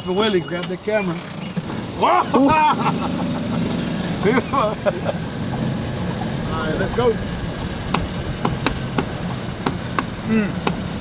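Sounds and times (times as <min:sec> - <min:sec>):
golf cart running noise: 0:00.0 - 0:11.0.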